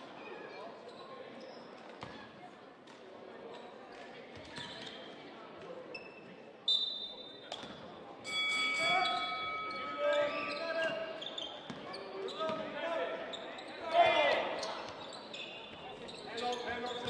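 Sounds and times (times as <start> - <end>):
sneaker squeaks: 0.2 - 2.4, 3.5 - 5.2, 5.9 - 7.9, 8.8 - 17.0.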